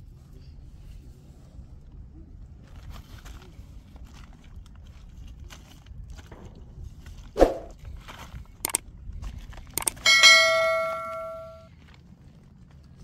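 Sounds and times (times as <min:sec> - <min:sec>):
sharp clicks: 0:09.8 - 0:10.2
bright bell ding: 0:09.9 - 0:11.7.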